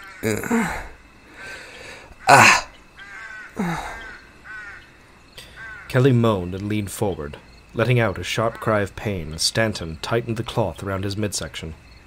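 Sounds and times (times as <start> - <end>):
crows cawing: 0.0 - 6.0, 8.4 - 8.9.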